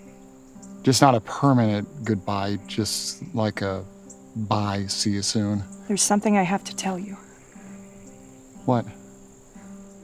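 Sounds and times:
soft background music: 0.0s - 10.0s
person speaking word: 1.4s - 3.8s, 4.4s - 5.6s.

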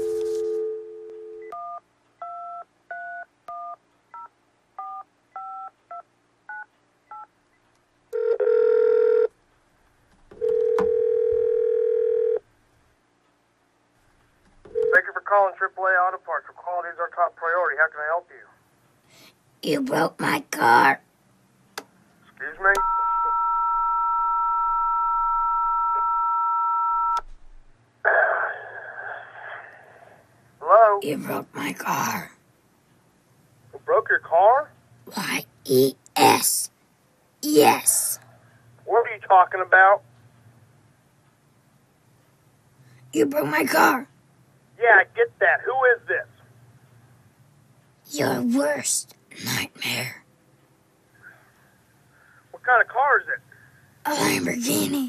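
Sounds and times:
telephone dial tone: 8.2s - 9.3s, 10.4s - 12.4s
telephone ringing tones: 8.2s - 9.3s, 10.4s - 12.4s, 14.7s - 15.0s, 22.6s - 27.2s.

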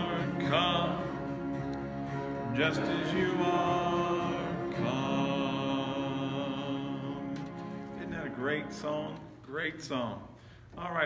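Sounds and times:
instrumental backing: 0.0s - 9.5s
worship song singing: 0.0s - 11.0s.

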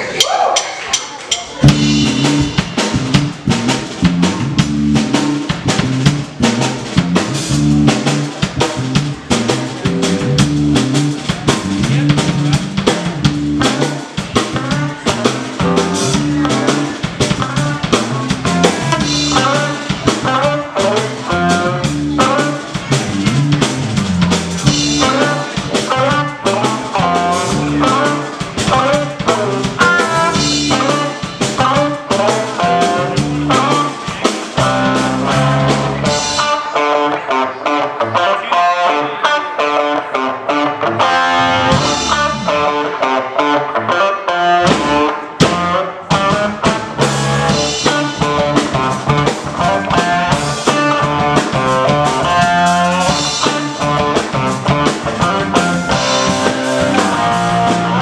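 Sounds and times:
funk rock band playing: 0.8s - 58.0s.

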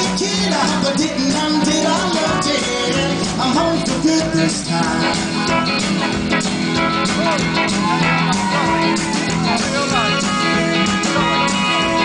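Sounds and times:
rockabilly band playing live: 0.0s - 12.0s.

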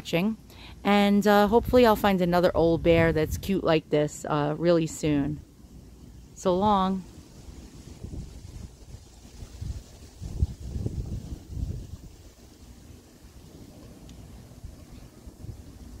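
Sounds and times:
wind buffeting microphone: 1.4s - 3.7s, 6.5s - 16.0s.

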